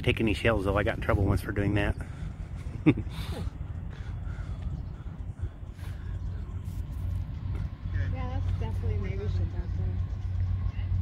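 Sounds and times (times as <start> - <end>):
wind rumble on microphone: 0.0 - 11.0
faint bird calls: 3.1 - 6.6.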